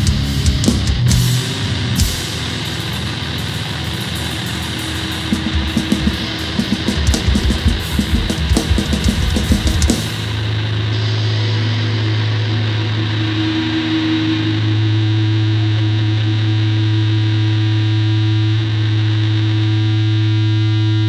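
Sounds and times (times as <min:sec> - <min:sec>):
distorted electric guitar drone: 0:00.0 - 0:21.0.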